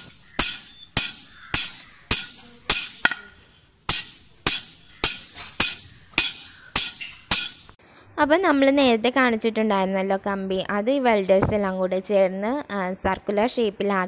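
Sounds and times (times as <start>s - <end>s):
hammer striking steel rod: 0.0s - 7.8s.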